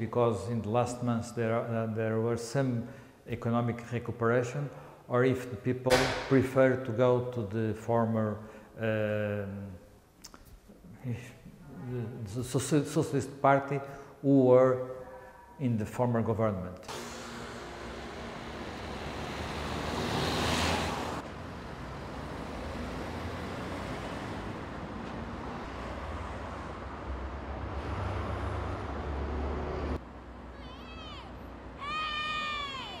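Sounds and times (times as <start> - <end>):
short high calls: 30.5 - 33.0.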